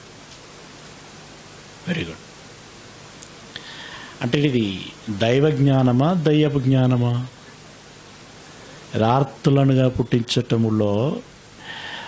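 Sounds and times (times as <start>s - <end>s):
microphone hiss: 0.0s - 12.0s
man speaking: 1.8s - 2.3s, 4.2s - 7.4s, 8.9s - 11.3s.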